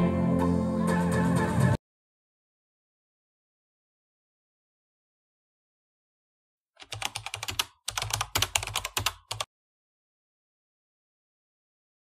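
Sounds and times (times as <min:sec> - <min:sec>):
keyboard typing: 0:06.8 - 0:09.5.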